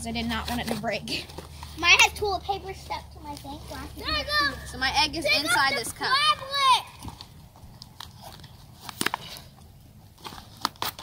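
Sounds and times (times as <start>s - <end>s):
child speaking: 1.8s - 7.0s.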